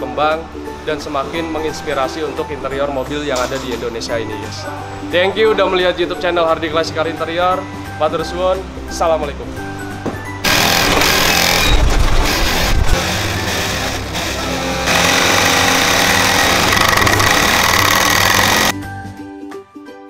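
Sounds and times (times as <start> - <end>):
plucked-string background music: 0.0 - 19.1
sewing machine rattling: 10.5 - 13.8, 14.8 - 18.7.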